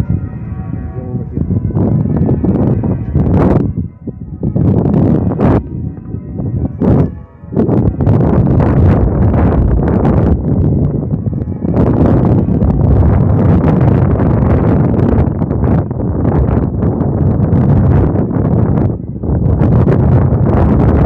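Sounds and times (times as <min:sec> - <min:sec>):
faint church bells ringing: 0:00.0 - 0:21.0
wind buffeting microphone: 0:00.0 - 0:21.0.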